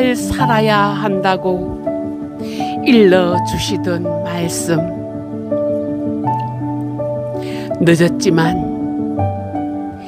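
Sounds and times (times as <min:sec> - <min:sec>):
soft new-age instrumental music: 0:00.0 - 0:10.0.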